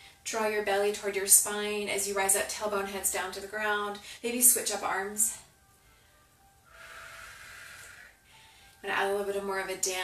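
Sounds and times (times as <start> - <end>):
faint background music: 0.0 - 10.0
person exhaling: 6.7 - 8.2.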